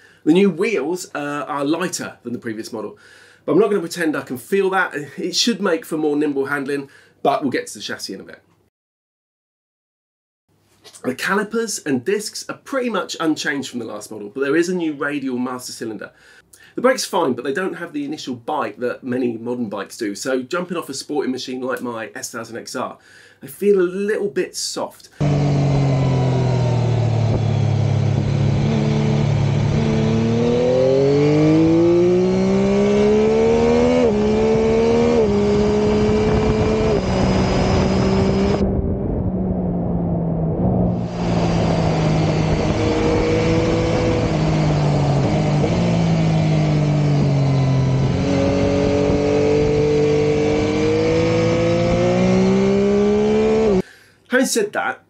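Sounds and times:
motorcycle engine revving: 0:25.2 - 0:53.8
wind noise: 0:27.1 - 0:30.1, 0:33.6 - 0:51.8.

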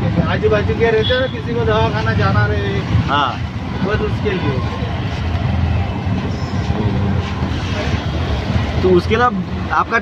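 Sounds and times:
engine and road rumble: 0:00.0 - 0:10.0.

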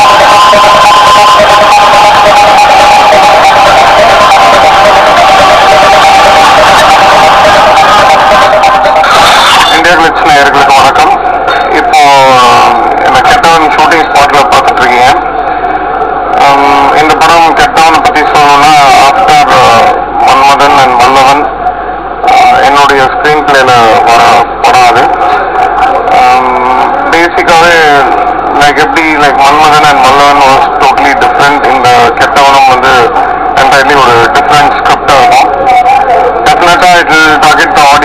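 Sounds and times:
faint hum: 0:00.0 - 0:38.0
man speaking into microphone: 0:09.0 - 0:15.3, 0:16.4 - 0:21.6, 0:22.2 - 0:25.4, 0:26.1 - 0:38.0.

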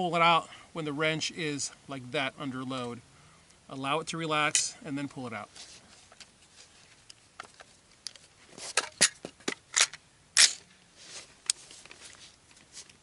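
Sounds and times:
rifle clicks and metallic clacks: 0:07.0 - 0:10.7.

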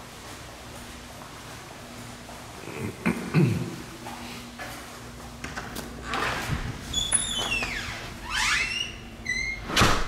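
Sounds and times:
door hinges squeaking: 0:06.1 - 0:10.0
door shutting with a thump: 0:09.6 - 0:10.0.

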